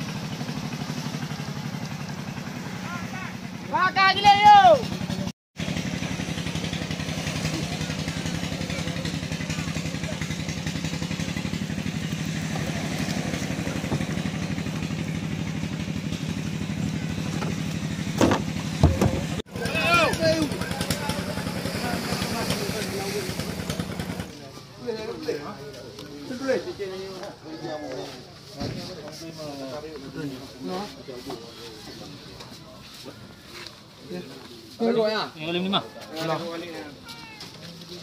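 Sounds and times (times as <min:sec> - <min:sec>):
small engine humming: 0:04.7 - 0:24.4.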